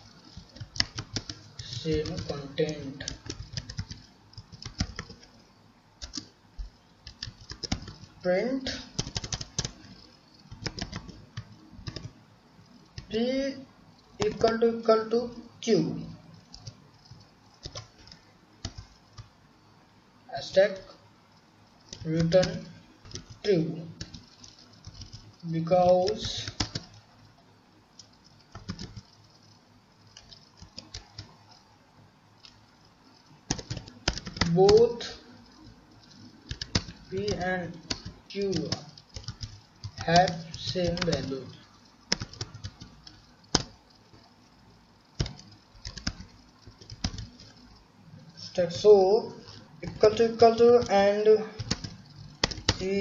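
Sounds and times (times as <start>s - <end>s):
computer keyboard keystrokes: 0.1s - 5.4s, 6.0s - 13.2s, 14.1s - 14.6s, 16.3s - 19.3s, 21.8s - 27.0s, 28.0s - 31.6s, 32.4s - 44.4s, 45.2s - 47.8s, 49.4s - 53.0s.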